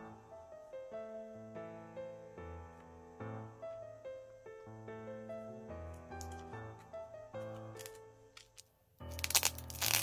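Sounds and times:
solo piano music: 0.0s - 10.0s
plastic wrapping crinkling: 7.6s - 10.0s.

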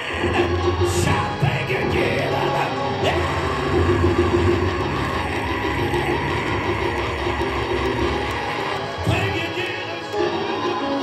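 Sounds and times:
congregation shouting and cheering: 0.0s - 11.0s
gospel church music: 0.0s - 11.0s.

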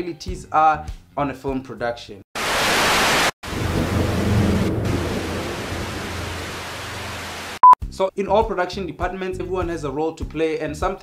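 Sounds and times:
static hiss: 2.4s - 3.3s, 6.2s - 7.6s
low rumble: 3.5s - 7.5s.

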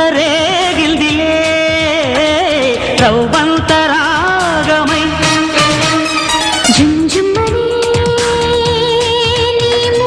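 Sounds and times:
band with steady drum beat: 0.0s - 10.0s.

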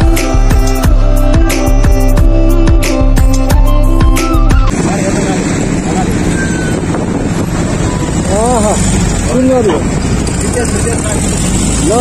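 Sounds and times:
motorcycle engine: 4.3s - 12.0s
wind buffeting microphone: 4.3s - 12.0s.

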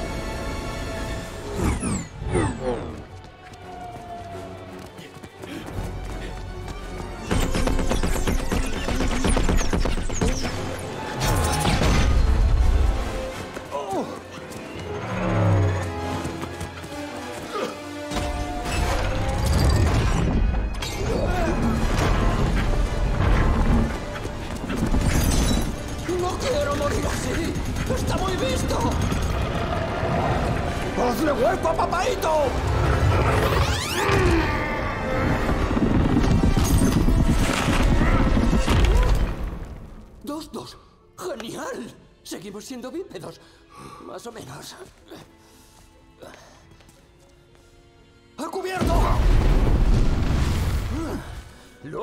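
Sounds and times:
film score music: 0.0s - 52.0s.

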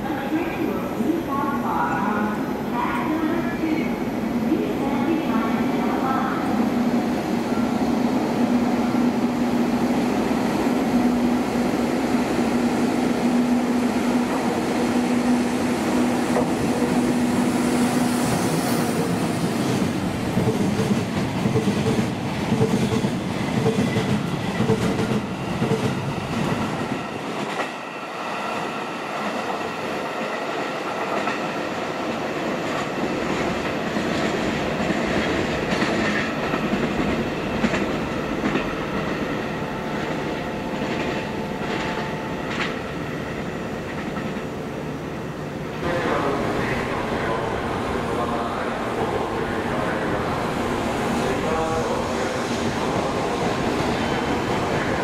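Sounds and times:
freight train rumble: 0.0s - 55.0s.

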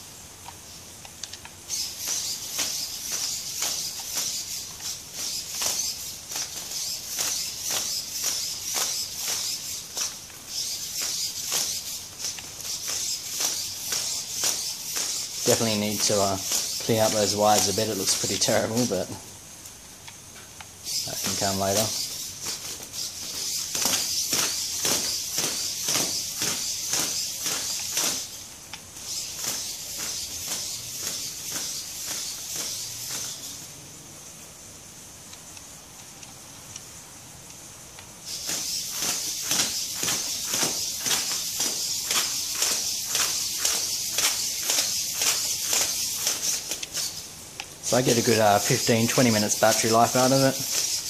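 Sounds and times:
servos whirring: 0.4s - 19.2s, 20.0s - 33.7s, 38.2s - 51.0s
plastic feet ticking on concrete: 1.2s - 19.2s, 20.0s - 33.5s, 38.0s - 51.0s.

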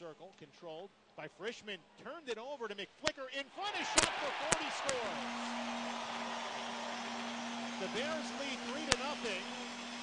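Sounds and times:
crowd cheering: 3.5s - 10.0s
goal horn low note: 3.8s - 9.9s.

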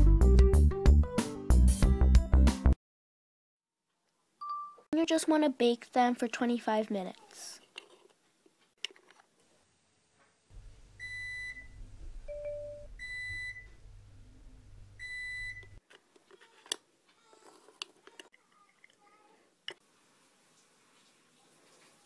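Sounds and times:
oven timer beeping: 11.0s - 13.8s, 15.0s - 15.8s.

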